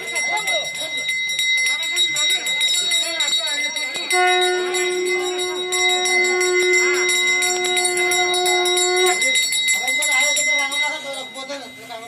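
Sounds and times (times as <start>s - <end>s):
small hand bell ringing rapidly: 0.0s - 12.0s
long steady note with overtones: 3.6s - 12.0s.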